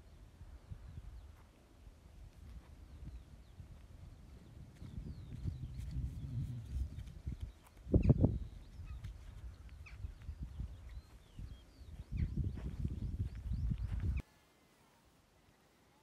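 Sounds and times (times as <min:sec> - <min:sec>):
wind buffeting microphone: 0:00.0 - 0:14.2.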